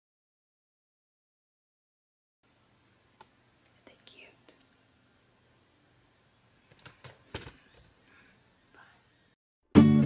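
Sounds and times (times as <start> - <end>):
soft whisper: 3.7 - 4.8, 8.0 - 9.2.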